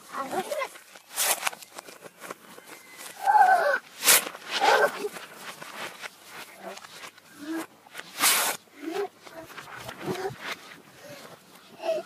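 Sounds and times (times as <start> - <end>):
reversed paper tearing rustle: 0.0 - 12.0.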